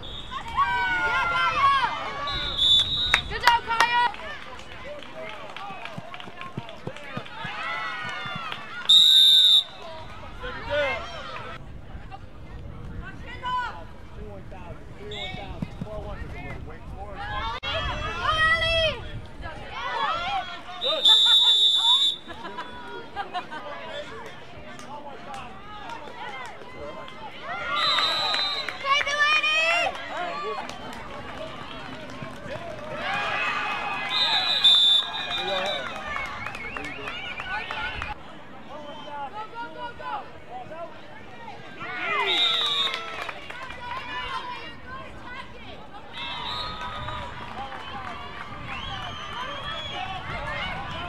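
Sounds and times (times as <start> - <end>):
people shouting and cheering: 0.0 - 12.2, 15.1 - 51.0
outdoor background noise: 0.0 - 51.0.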